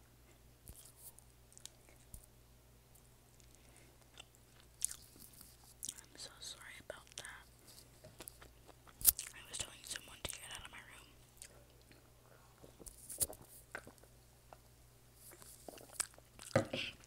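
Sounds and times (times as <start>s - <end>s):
close chewing and wet mouth sounds: 0.7s - 2.3s, 3.0s - 14.6s, 15.2s - 17.0s.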